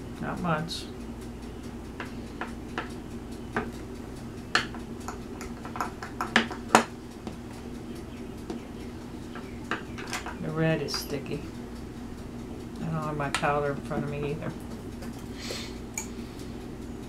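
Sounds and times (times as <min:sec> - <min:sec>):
faint steady hum: 0:00.0 - 0:17.0
light clicks and taps of clay rolling: 0:01.5 - 0:11.9.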